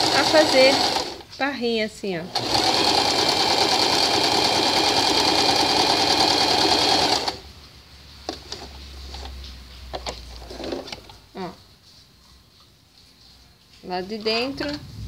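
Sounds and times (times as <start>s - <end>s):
sewing machine running: 0.0s - 1.2s, 2.3s - 7.4s
faint clicks and rustles: 7.6s - 14.9s.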